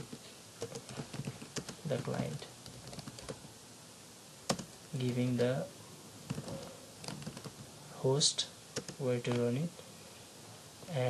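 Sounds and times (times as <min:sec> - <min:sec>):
computer keyboard keys clicking: 0:00.6 - 0:03.4, 0:04.5 - 0:04.7, 0:06.3 - 0:07.6, 0:08.8 - 0:09.5.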